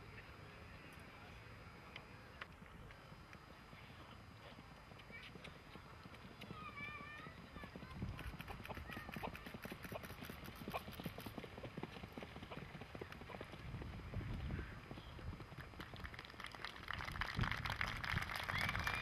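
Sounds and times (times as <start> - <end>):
horse hooves on dirt track: 2.0 - 19.0.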